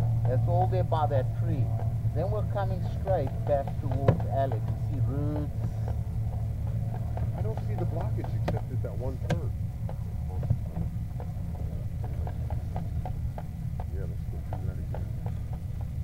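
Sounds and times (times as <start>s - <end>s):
low mechanical hum: 0.0s - 16.0s
indistinct voices: 7.3s - 9.5s, 13.8s - 15.2s.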